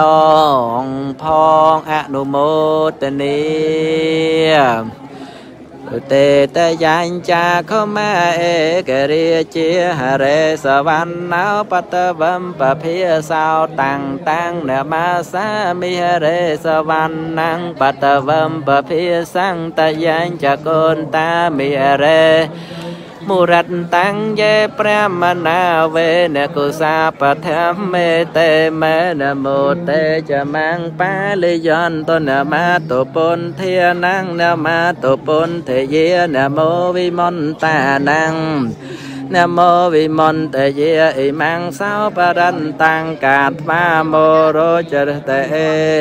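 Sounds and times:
person chanting melodically: 0.0s - 46.0s.

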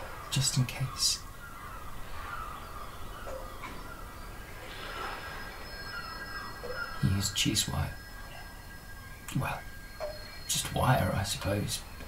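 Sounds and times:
high drone tones: 1.4s - 12.0s
higher tones: 3.1s - 11.2s
softly wavering pitched line: 3.3s - 11.6s.

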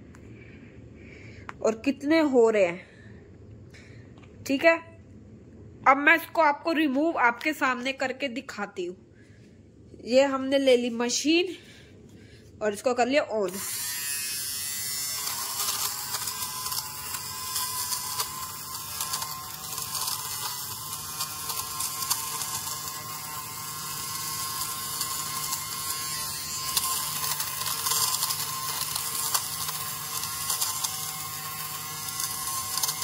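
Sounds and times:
lint remover motor humming: 13.5s - 33.0s.

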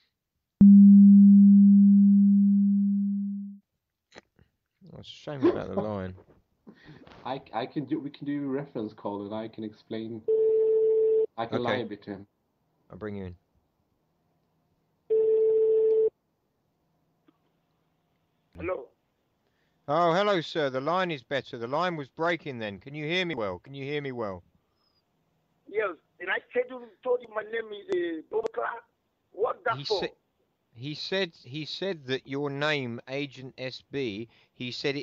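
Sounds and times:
low electronic tone: 0.6s - 3.6s
telephone line beep: 15.1s - 16.1s.

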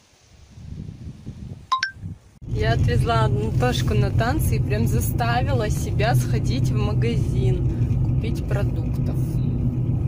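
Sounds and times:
wind buffeting microphone: 0.3s - 10.0s.

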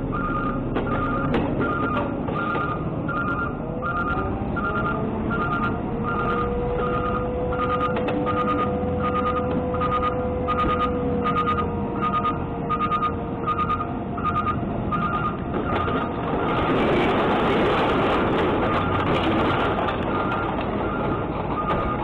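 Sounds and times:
diesel engine running under load: 0.0s - 22.0s
backup alarm beeping: 0.1s - 16.7s, 20.2s - 22.0s.

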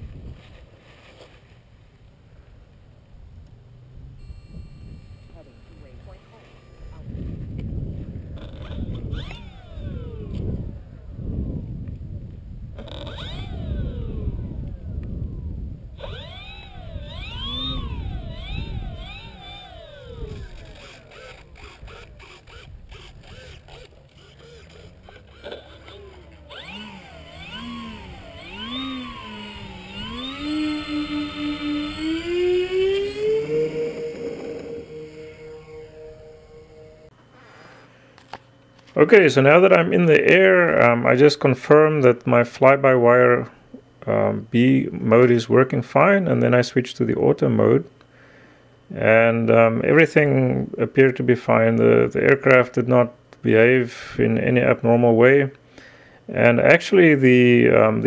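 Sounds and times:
low rumbling noise: 1.6s - 37.3s
model plane propeller whine: 3.7s - 37.2s.

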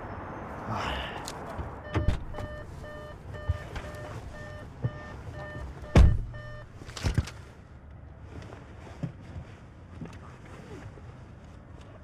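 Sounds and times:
car warning chime beeping: 1.8s - 6.8s
car door shutting: 1.9s - 2.7s, 4.8s - 7.2s.

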